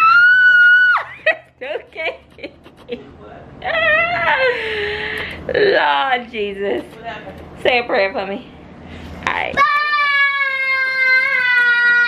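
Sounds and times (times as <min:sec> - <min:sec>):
woman whining: 0:03.6 - 0:04.5.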